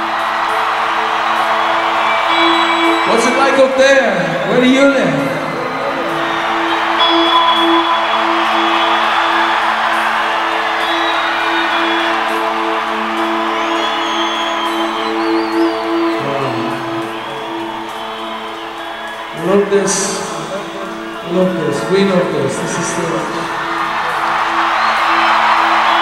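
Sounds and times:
audience whistles: 0.0s - 26.0s
live band sustained chord: 0.0s - 26.0s
stadium crowd cheering: 0.0s - 26.0s.

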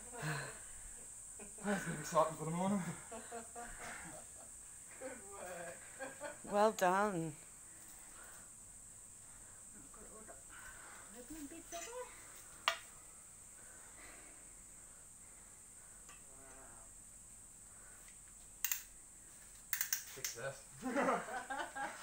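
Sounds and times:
high-pitched hiss: 0.0s - 22.0s
sharp clicks: 18.6s - 19.0s, 19.7s - 20.4s.

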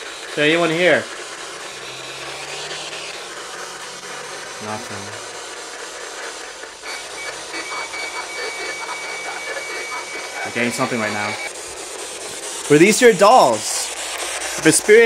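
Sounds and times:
radio static hiss: 0.0s - 15.0s
choppy radio fragments: 0.1s - 15.0s.

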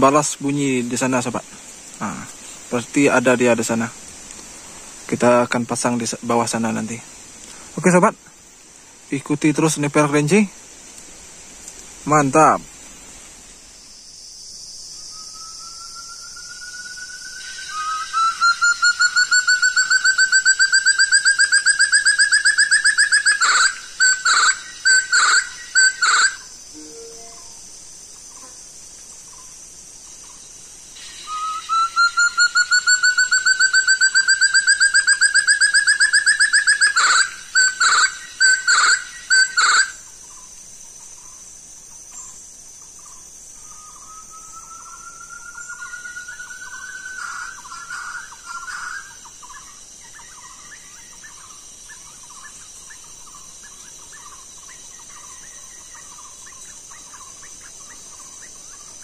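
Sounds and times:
partridge call trill of whistles: 15.1s - 27.6s, 31.0s - 40.0s, 43.6s - 51.5s.

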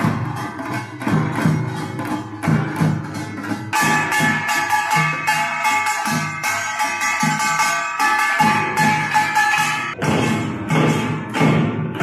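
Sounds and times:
drum beats: 0.0s - 12.0s.

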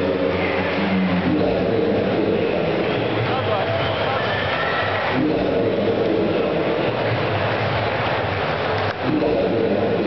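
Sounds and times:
crowd noise: 0.0s - 10.0s
loud techno music: 0.0s - 10.0s.

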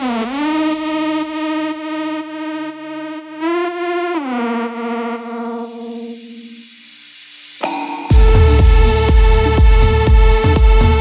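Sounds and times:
distorted synth lead: 0.0s - 11.0s.

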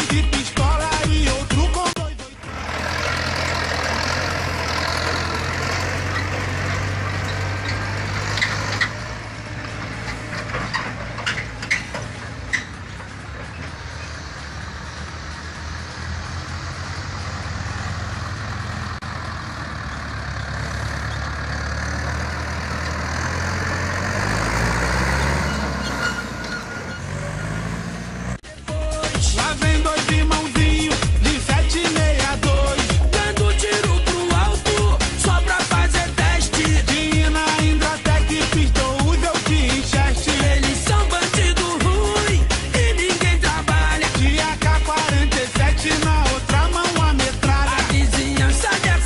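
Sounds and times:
tractor diesel engine running: 0.2s - 49.0s.

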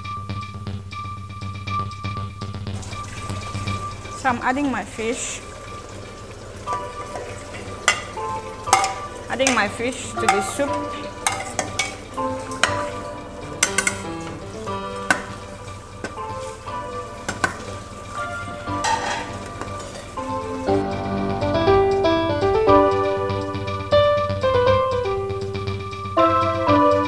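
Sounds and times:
background music: 0.0s - 27.0s
keyboard music: 2.8s - 27.0s
metal spoon clinking on pot: 6.7s - 20.8s.

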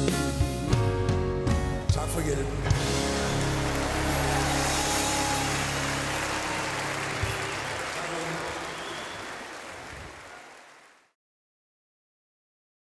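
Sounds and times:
band holding low chord: 2.0s - 8.4s
audience applauding: 2.4s - 11.2s.

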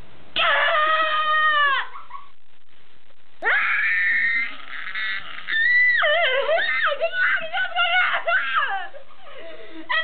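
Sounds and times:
woman wailing high-pitched: 5.0s - 9.0s.

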